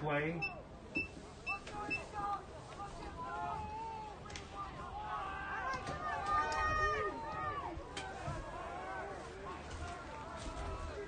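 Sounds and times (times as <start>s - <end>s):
faint voices: 0.0s - 11.0s
short high-pitched beeps: 0.4s - 2.1s.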